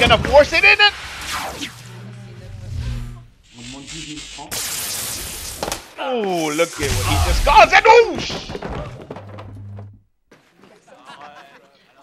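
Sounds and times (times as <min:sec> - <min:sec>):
loud burst of wiring flaring: 0:00.0 - 0:05.9, 0:06.8 - 0:07.8
low electrical buzz: 0:01.3 - 0:04.5
crackling electrical sparks: 0:02.9 - 0:07.8.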